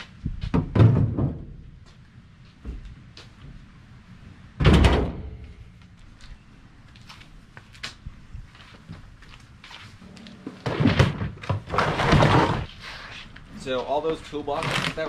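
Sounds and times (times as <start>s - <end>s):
heavy thunk: 4.6s - 5.4s
plastic drawers knocking and clattering: 10.6s - 12.7s.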